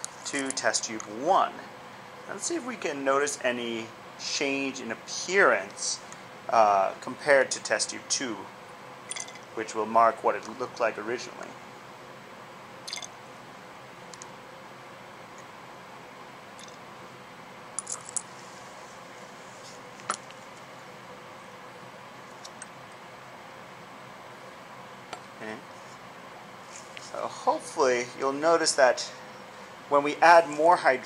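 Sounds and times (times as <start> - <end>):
room hum: 0.0 - 31.0
glassware clinking: 9.1 - 9.4, 12.9 - 13.1.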